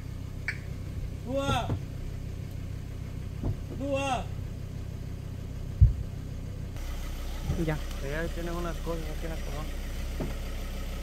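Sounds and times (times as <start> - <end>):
car engine low rumble: 0.0 - 11.0
sharp low thump: 3.4 - 3.8, 5.7 - 6.1, 10.1 - 10.4.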